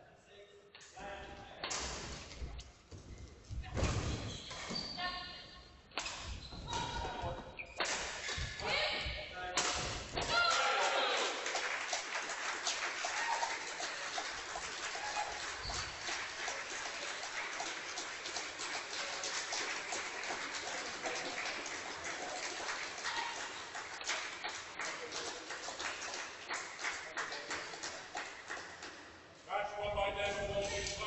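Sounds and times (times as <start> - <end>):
crowd applause: 10.4 - 28.8.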